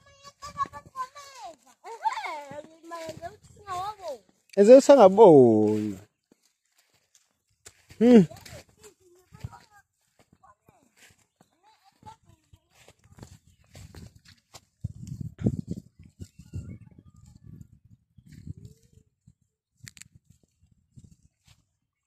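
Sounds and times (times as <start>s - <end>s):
rustling in dry grass: 0.0s - 4.2s, 5.6s - 16.5s.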